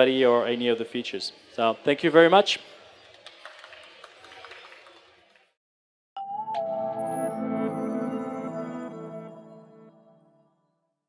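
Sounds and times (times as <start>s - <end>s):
busy exhibition hall noise: 0.0s - 5.5s.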